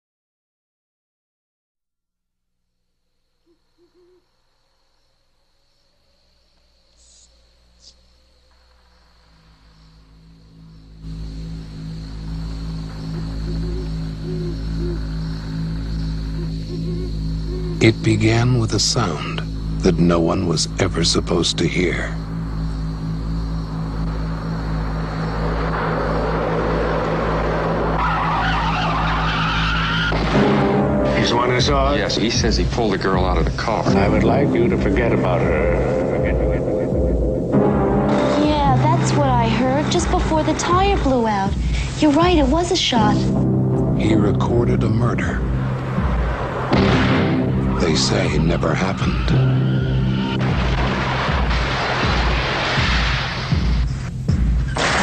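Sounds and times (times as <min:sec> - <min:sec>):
low hum: 0:02.7 - 0:55.0
owl hooting: 0:03.4 - 0:04.5, 0:06.9 - 0:20.4
car approaching: 0:06.1 - 0:54.7
tyres screeching in a skid: 0:25.0 - 0:30.7, 0:45.3 - 0:53.6.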